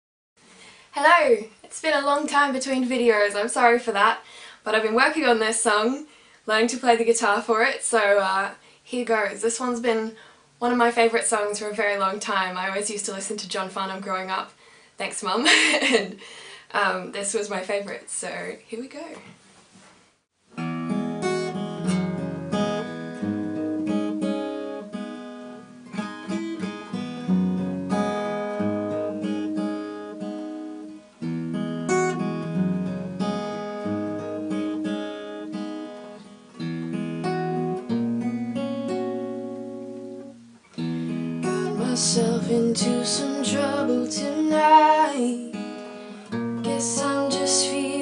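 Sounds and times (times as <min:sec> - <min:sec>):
acoustic guitar strumming: 0:20.5 - 0:48.0.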